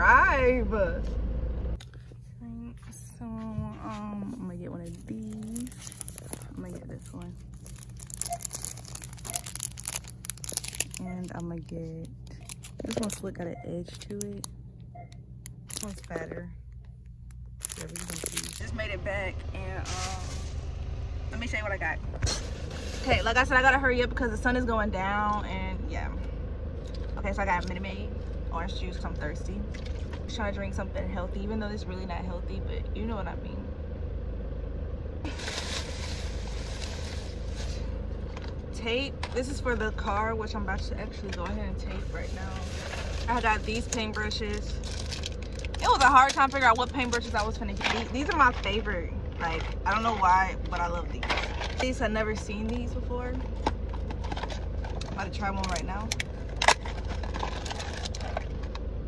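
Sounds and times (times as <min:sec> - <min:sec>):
car idling hum: 0:00.0 - 0:59.0
plastic bag rustling: 0:04.8 - 0:11.6, 0:12.3 - 0:14.0, 0:15.7 - 0:16.2, 0:17.6 - 0:18.7, 0:35.3 - 0:38.0, 0:42.2 - 0:48.7
plastic packaging crinkling: 0:04.8 - 0:14.5, 0:15.6 - 0:16.2, 0:17.6 - 0:18.7, 0:42.6 - 0:48.7.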